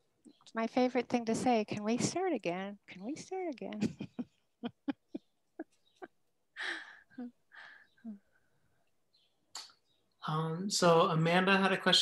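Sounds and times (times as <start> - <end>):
person chuckling softly: 3.8 - 5.2
breathy outbreath: 6.6 - 8.0.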